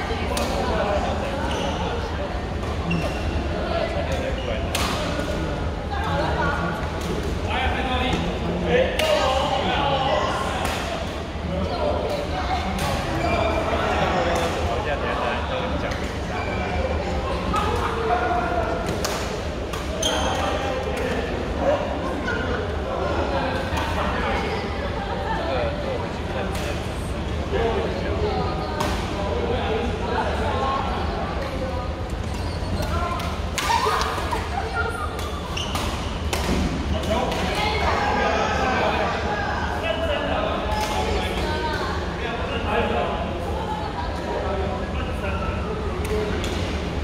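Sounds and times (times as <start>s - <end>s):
background chatter: 0.0s - 47.0s
voices of players: 0.0s - 47.0s.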